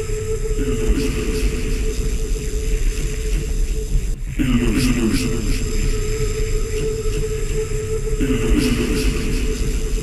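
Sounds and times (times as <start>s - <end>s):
deep droning bass: 0.0s - 10.0s.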